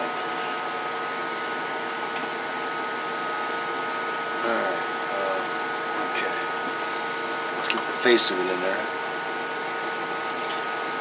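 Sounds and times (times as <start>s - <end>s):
electronics and cooling fans humming: 0.0s - 11.0s.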